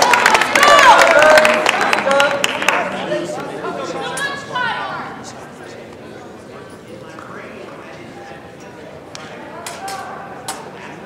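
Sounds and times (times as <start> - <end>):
chatter of voices in a hall: 0.0 - 11.0.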